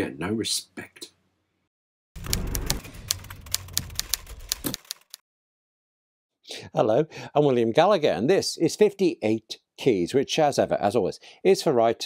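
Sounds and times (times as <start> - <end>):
rapid typing on keyboard: 2.2 - 5.2.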